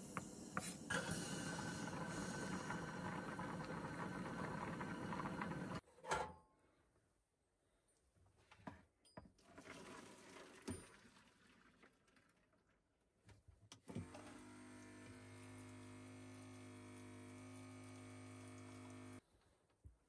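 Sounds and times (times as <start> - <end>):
electric water pump humming: 0.9 - 5.8, 14.0 - 19.2
water running into a pot: 0.9 - 5.8, 9.5 - 12.6, 14.8 - 19.2.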